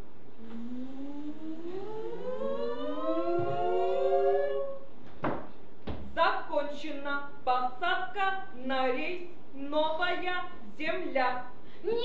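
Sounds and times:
rising siren-like glide: 0:00.4 - 0:04.9.

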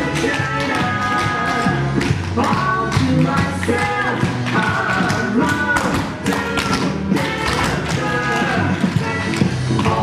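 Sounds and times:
swing music: 0:00.0 - 0:10.0.

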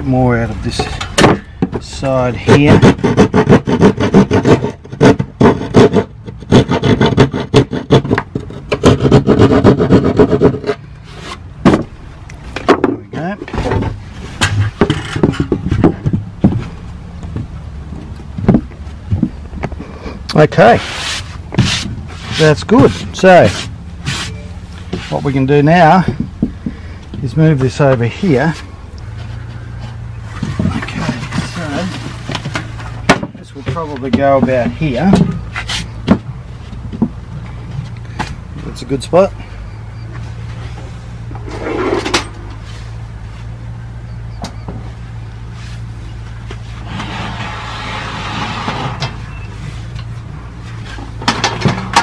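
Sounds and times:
steady low hum: 0:00.0 - 0:52.0
board knocking against ladder frame: 0:00.8 - 0:01.8, 0:12.6 - 0:16.7, 0:18.4 - 0:19.4, 0:30.4 - 0:35.4
board knocking against metal ladder: 0:30.4 - 0:35.4.

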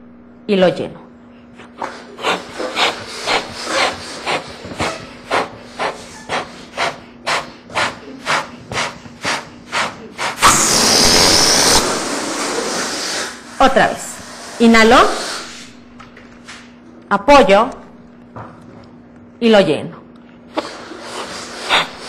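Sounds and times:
person blowing up balloon: 0:01.8 - 0:15.8, 0:20.5 - 0:22.0
air hissing out of balloon: 0:01.8 - 0:15.9, 0:20.5 - 0:22.0.

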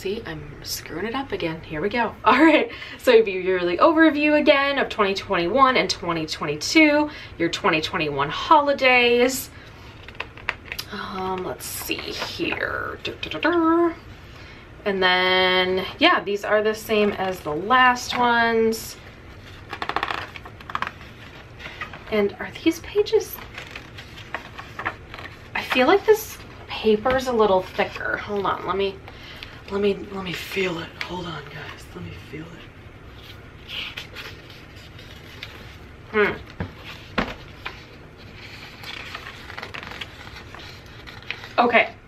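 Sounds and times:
paper pages rustling: 0:09.8 - 0:13.4, 0:19.0 - 0:31.8, 0:33.1 - 0:41.7
paper page turning on wire binding: 0:19.3 - 0:22.1, 0:23.3 - 0:26.0, 0:36.4 - 0:41.6.

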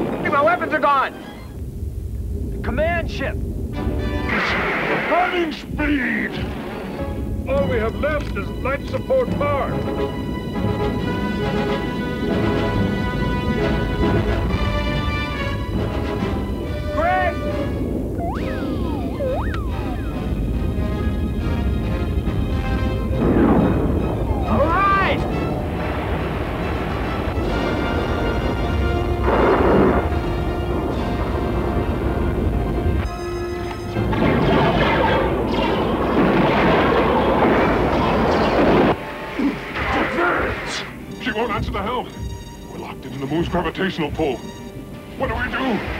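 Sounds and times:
explosion-like blasts: 0:00.0 - 0:01.1, 0:01.8 - 0:07.0, 0:17.4 - 0:33.1, 0:34.0 - 0:41.0
low rumble: 0:00.0 - 0:33.1
orchestral score: 0:03.4 - 0:45.9
sweeping electronic effects: 0:18.1 - 0:21.0.

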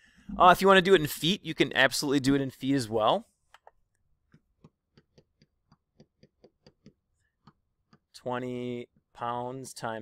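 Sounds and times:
pen tapping on whiteboard: 0:04.3 - 0:08.1.

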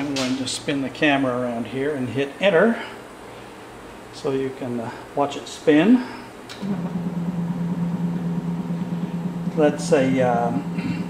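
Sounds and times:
stepper motor humming: 0:06.6 - 0:11.0.

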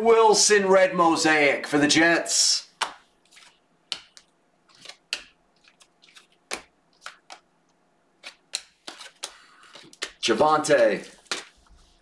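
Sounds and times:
cards being flipped through: 0:02.8 - 0:07.4, 0:08.2 - 0:12.0.

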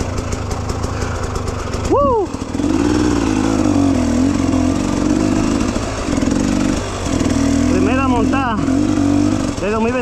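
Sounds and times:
motorcycle engine idling: 0:00.0 - 0:10.0
person shouting: 0:01.8 - 0:02.4.

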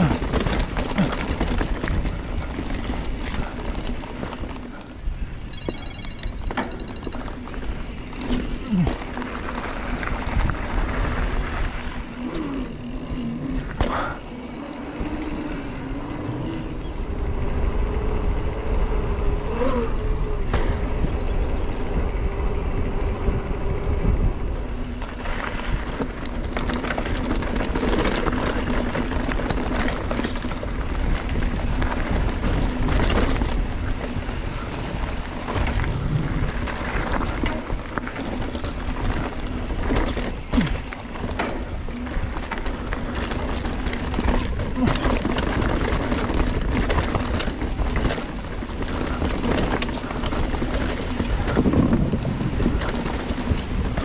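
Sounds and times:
bike rattling over rocks: 0:00.0 - 0:54.0
tyre and wind rush: 0:00.0 - 0:54.0.

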